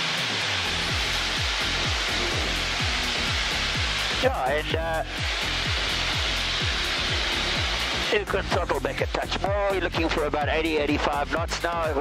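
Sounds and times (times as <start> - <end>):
aircraft engine and propeller noise: 0.0 - 10.1.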